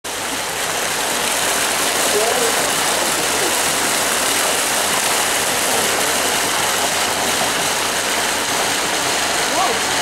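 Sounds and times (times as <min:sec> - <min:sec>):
fountain jets splashing into water: 0:00.1 - 0:10.0.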